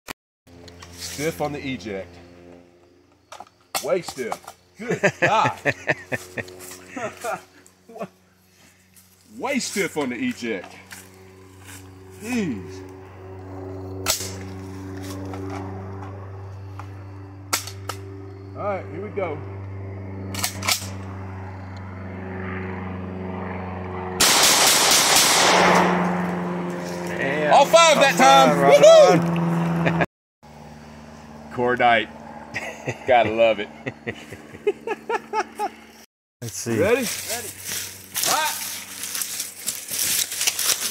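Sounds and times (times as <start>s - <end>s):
man laughing: 4.8s - 8.2s, 28.1s - 30.1s, 32.5s - 35.9s
shotgun shot: 24.2s - 26.2s.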